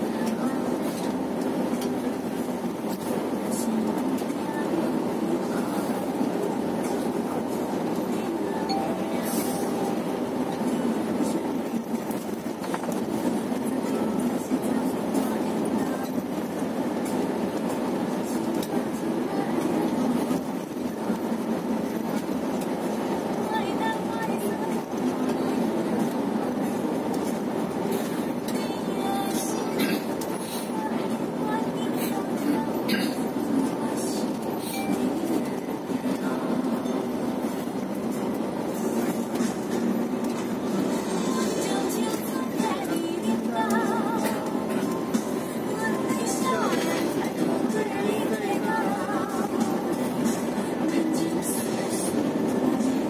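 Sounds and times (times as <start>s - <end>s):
coach engine and road rumble: 0.0s - 53.0s.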